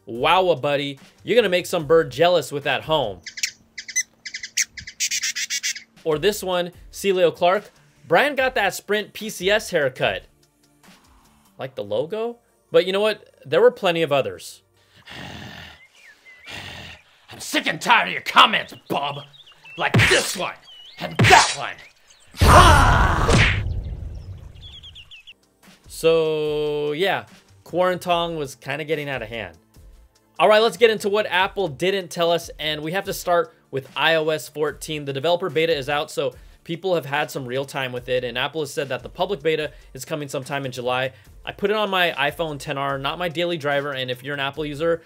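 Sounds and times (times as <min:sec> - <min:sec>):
small songbird chirping: 0:03.1 - 0:06.0, 0:15.6 - 0:22.4, 0:23.6 - 0:25.4
person shouting: 0:22.4 - 0:23.5.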